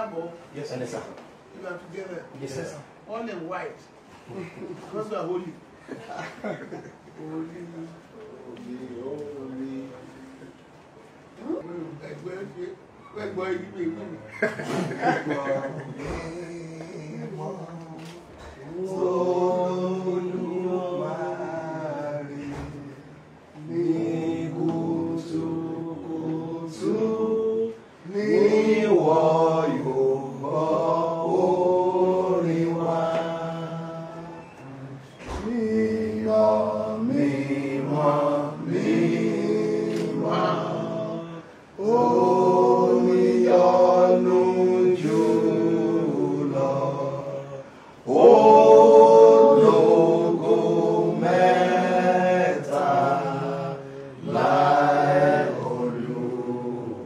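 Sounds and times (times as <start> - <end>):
voices singing unaccompanied chant: 14.5 - 57.0.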